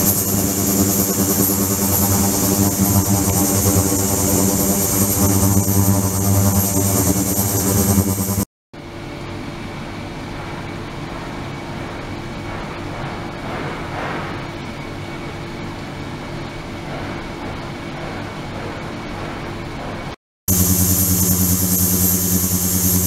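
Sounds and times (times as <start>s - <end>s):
ultrasonic cleaner buzzing hum: 0.0s - 8.5s, 20.5s - 23.0s.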